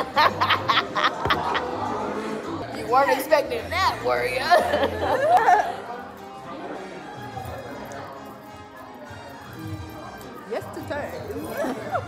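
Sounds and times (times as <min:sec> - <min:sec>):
women laughing: 0:00.0 - 0:02.0, 0:04.4 - 0:05.9, 0:11.4 - 0:12.0.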